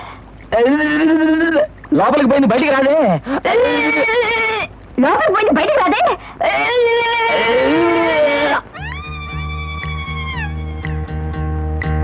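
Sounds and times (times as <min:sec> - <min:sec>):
high wavering voice: 0:06.4 - 0:10.6.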